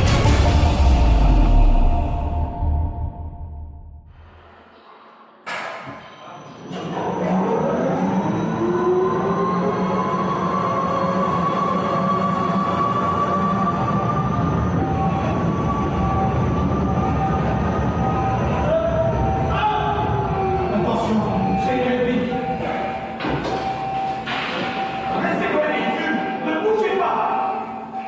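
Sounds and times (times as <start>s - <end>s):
intro music: 0.0s - 4.6s
roller coaster rumbling in tunnel: 6.0s - 26.4s.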